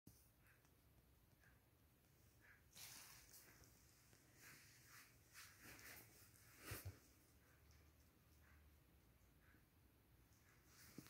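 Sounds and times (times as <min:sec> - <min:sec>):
faint rustles: 0:02.4 - 0:07.8.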